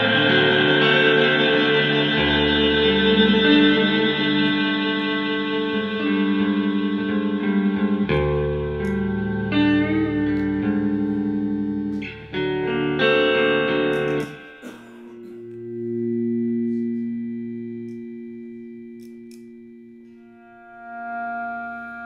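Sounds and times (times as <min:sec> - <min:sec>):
distorted electric guitar chords: 0:00.0 - 0:22.0
soft held guitar tone: 0:00.0 - 0:22.0.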